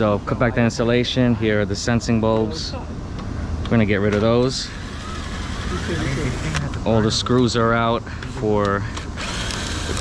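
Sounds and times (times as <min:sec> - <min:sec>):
low hum of equipment: 0:00.0 - 0:10.0
cordless drill whine: 0:04.5 - 0:06.8, 0:09.2 - 0:10.0.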